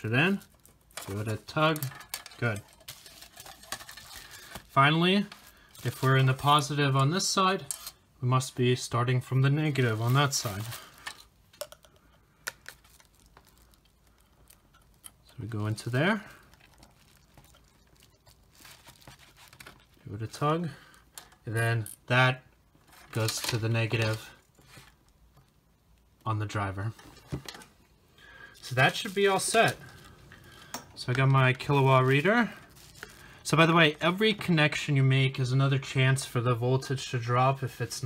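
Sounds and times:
wires and connectors rattling: 0.0s - 8.0s, 9.6s - 20.3s, 22.8s - 25.5s.

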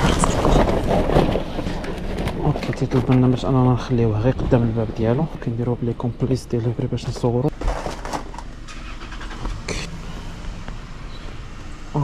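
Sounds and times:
car engine rumble: 0.0s - 12.0s.

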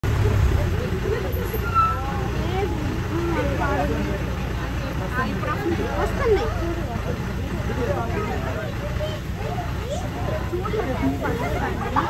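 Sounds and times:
bus engine idling: 0.0s - 12.0s
passengers chattering: 0.0s - 12.0s.

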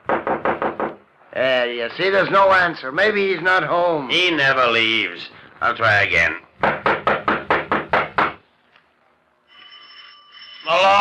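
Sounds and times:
rapid knocking on wooden door: 0.0s - 1.0s, 6.6s - 8.4s
faint steady high tone: 9.4s - 11.0s.

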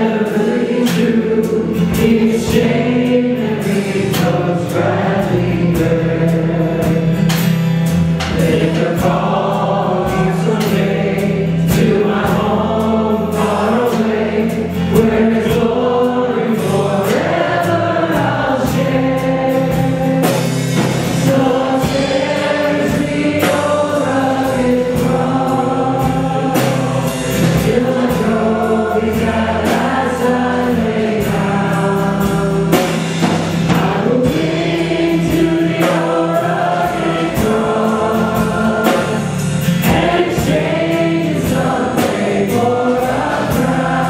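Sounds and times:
drums: 0.0s - 44.0s
guitar: 0.0s - 44.0s
singers singing together: 0.0s - 44.0s.

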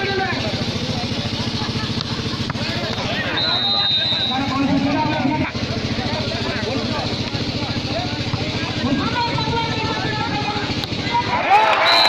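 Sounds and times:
crowd chatter: 0.0s - 12.0s
engine running steadily: 0.0s - 12.0s.

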